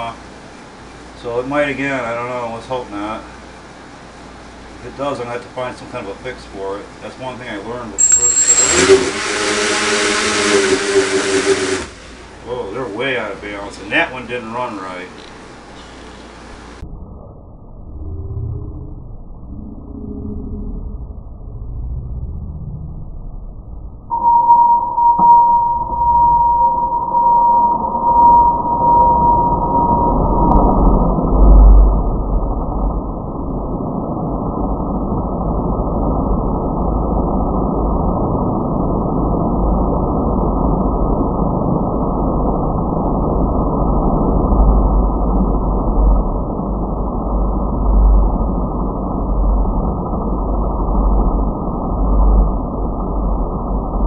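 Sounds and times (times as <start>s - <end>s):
quadcopter motors whining: 8.0s - 12.0s
propellers rushing: 8.0s - 12.3s.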